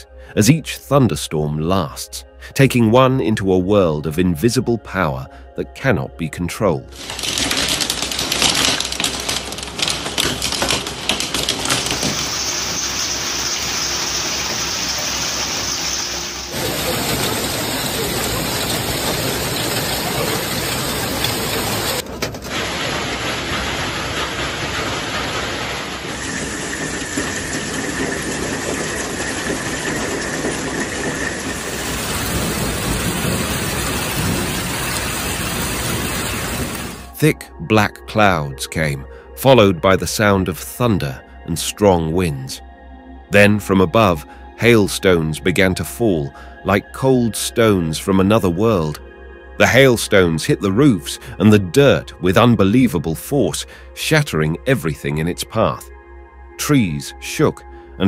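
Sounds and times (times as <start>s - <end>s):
sharp pattering impacts: 6.9s - 18.3s
heavy rain and hail: 6.9s - 37.2s.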